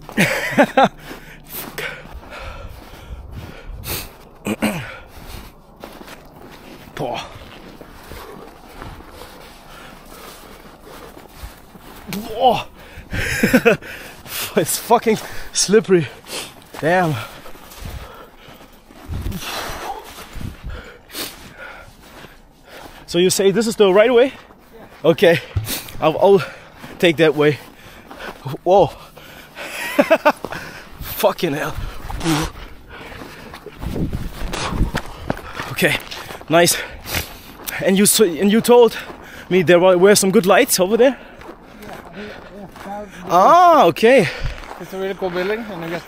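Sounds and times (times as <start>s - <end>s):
footsteps crunching in snow: 0.0s - 46.0s
breathing: 1.0s - 4.2s, 8.0s - 11.6s, 12.8s - 14.6s, 15.2s - 16.6s, 17.2s - 23.1s, 25.4s - 27.0s, 27.6s - 28.4s, 29.0s - 29.8s, 30.5s - 31.0s, 31.8s - 33.7s, 34.6s - 35.7s, 36.3s - 37.8s, 39.0s - 39.5s, 41.1s - 43.3s, 44.2s - 44.8s.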